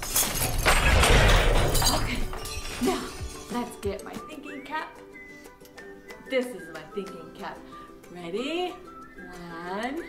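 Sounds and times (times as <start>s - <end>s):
crash breaking sound effect: 0.5s - 2.0s.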